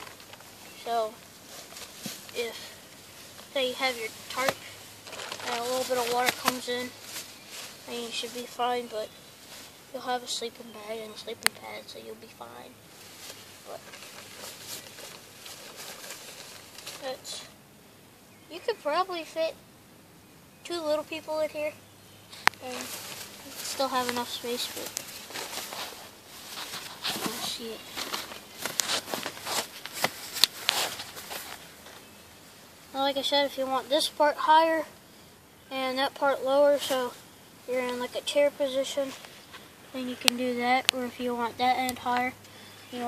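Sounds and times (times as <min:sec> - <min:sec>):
hammock fabric rustling: 0:00.0 - 0:17.6, 0:21.2 - 0:34.9, 0:36.0 - 0:43.0.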